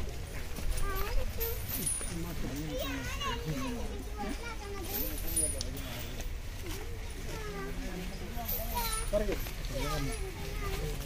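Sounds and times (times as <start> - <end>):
child's voice: 0.8 - 1.9, 2.7 - 5.3, 6.6 - 9.1, 9.7 - 11.0
people talking: 0.8 - 11.0.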